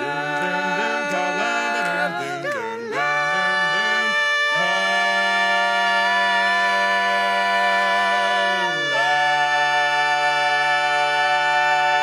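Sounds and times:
male quartet singing a cappella: 0:00.0 - 0:12.0.

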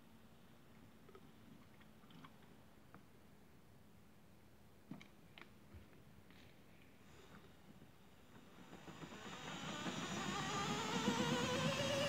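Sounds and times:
small electric motor whine: 0:08.6 - 0:12.0.

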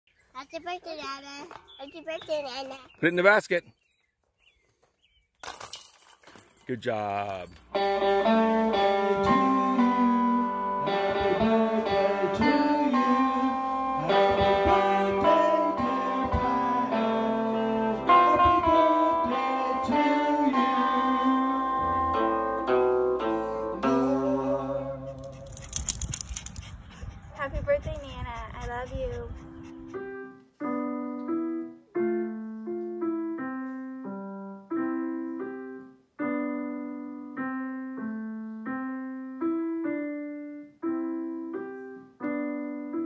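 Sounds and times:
discs rattling metal chains: 0:05.4 - 0:07.7, 0:25.5 - 0:26.6
person speaking: 0:06.6 - 0:07.6.

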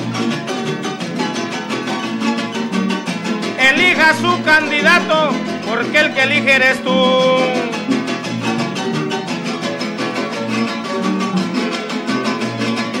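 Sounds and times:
harp and strummed guitars: 0:00.0 - 0:13.0.

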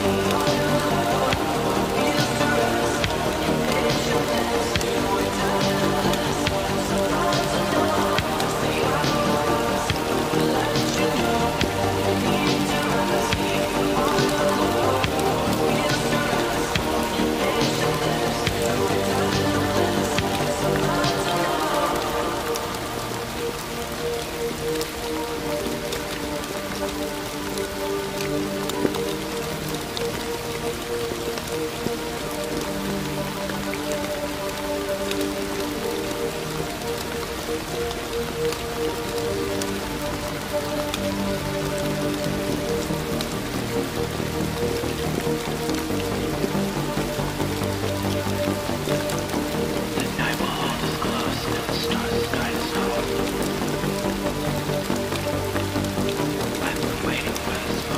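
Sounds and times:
soft music of held notes: 0:00.0 - 0:57.9
steady rain falling: 0:00.0 - 0:57.9.

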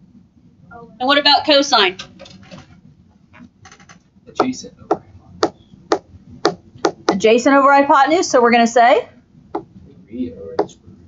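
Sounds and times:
stylus tapping on tablet screen: 0:04.4 - 0:07.2, 0:09.5 - 0:09.7.

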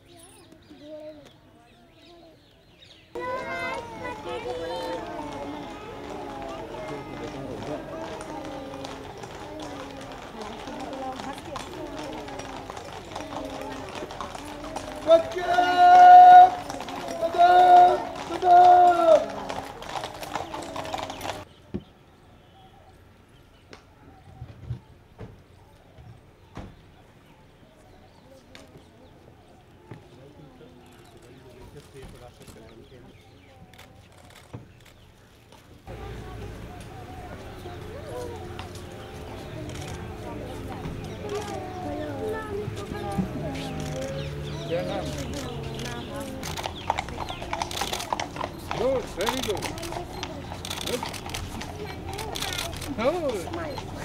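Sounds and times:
voices of children and adults: 0:00.0 - 0:54.0
horse hooves on pavement: 0:03.2 - 0:21.9, 0:27.7 - 0:54.0.

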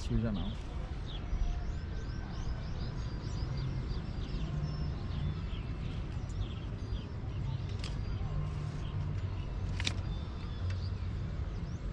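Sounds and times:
birds chirping: 0:00.0 - 0:11.9.

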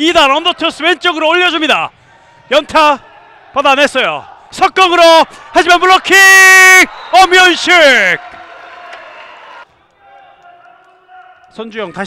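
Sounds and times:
man commentating: 0:00.0 - 0:01.9, 0:03.6 - 0:08.3
players' voices: 0:00.0 - 0:12.0
gym crowd hubbub: 0:00.3 - 0:12.0.

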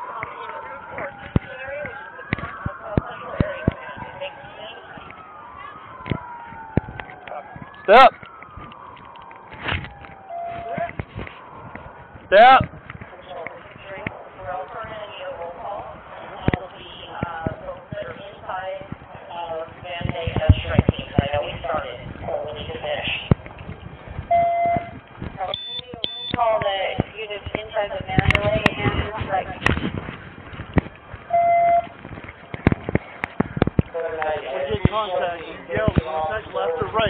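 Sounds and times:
muffled voices talking: 0:00.0 - 0:08.2, 0:12.3 - 0:23.4, 0:24.8 - 0:30.2, 0:32.5 - 0:37.0
short electronic beeps: 0:25.5 - 0:26.4, 0:31.3 - 0:31.9
sharp clicks and knocks: 0:31.9 - 0:33.9.

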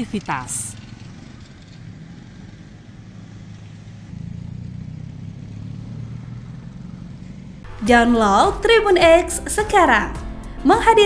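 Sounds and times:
low engine hum: 0:00.0 - 0:10.6
cars and motorcycles passing: 0:00.0 - 0:11.0.

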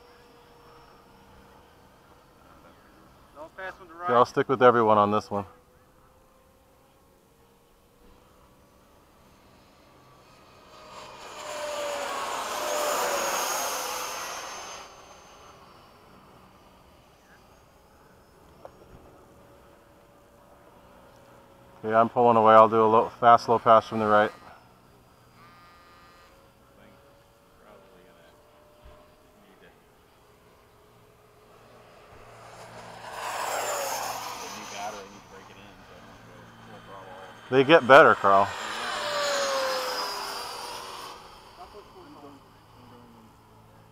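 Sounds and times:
jet fan whine and air rush: 0:08.0 - 0:25.4, 0:26.3 - 0:43.9.

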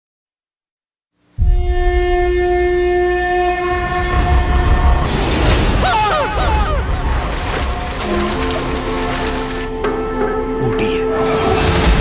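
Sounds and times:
sustained horn-like note: 0:01.4 - 0:05.1, 0:08.0 - 0:10.5.

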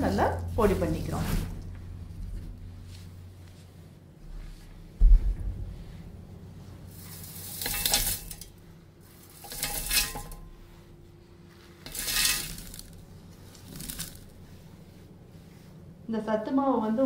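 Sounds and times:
grains and nuts pouring into steel jar: 0:07.0 - 0:08.5, 0:09.2 - 0:10.4, 0:11.9 - 0:14.4.

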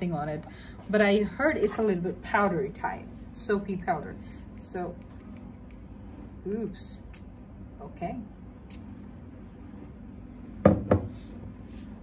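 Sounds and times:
glass bottle knocking on table: 0:10.6 - 0:11.1.

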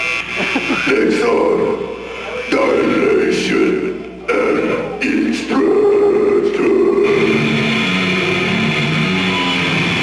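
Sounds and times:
death metal band playing live: 0:05.4 - 0:10.0.

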